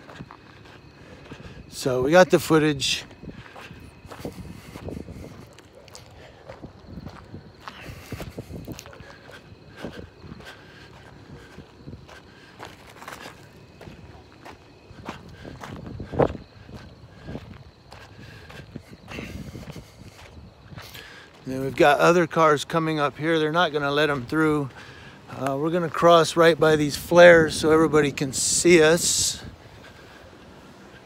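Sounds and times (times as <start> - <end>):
footsteps on pavement: 0.0 - 31.0.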